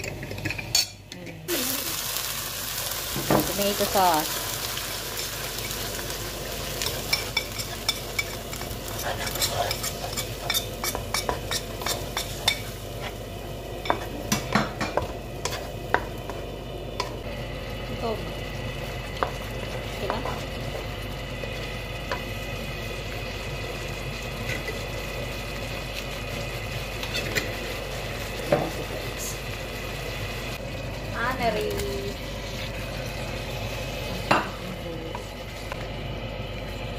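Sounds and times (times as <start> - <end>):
sauce sizzling: 1.5 - 36.9
spoon scraping a pan: 6.8 - 16.4, 27.0 - 27.6.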